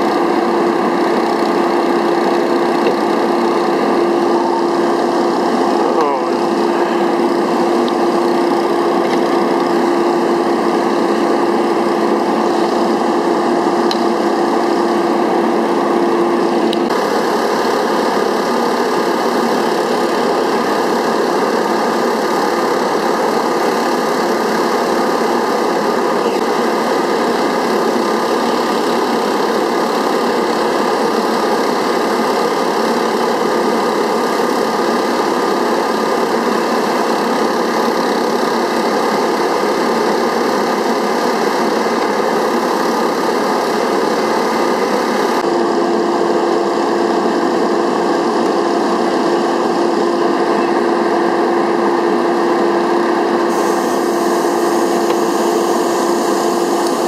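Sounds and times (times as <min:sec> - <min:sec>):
small engine running: 0:00.0 - 0:57.0
steady hum: 0:00.0 - 0:57.0.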